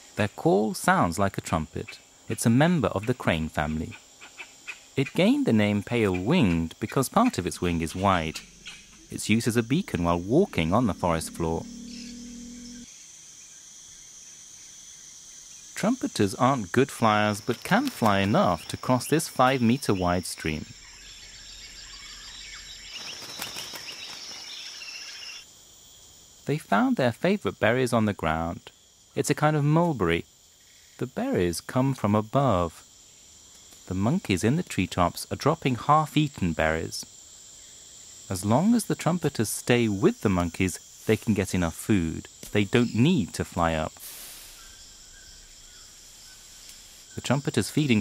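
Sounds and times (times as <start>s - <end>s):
faint chirps: 5.0s - 14.1s, 14.9s - 25.4s, 42.5s - 48.0s
high-pitched insect drone: 5.2s - 25.5s, 42.0s - 48.0s
faint short notes: 6.2s - 12.9s.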